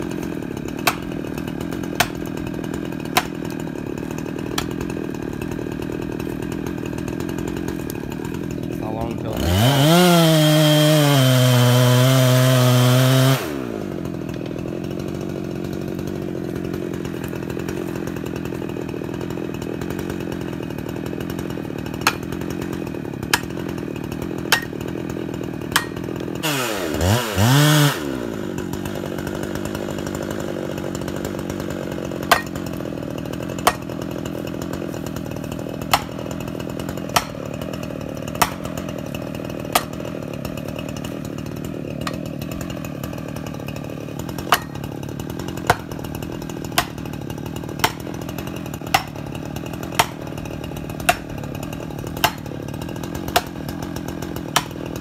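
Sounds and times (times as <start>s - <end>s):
chainsaw engine idling: 0.0s - 55.0s
tool knocking against tree trunk: 0.2s - 1.2s, 4.5s - 4.8s, 44.4s - 44.8s, 47.8s - 48.0s, 54.5s - 54.8s.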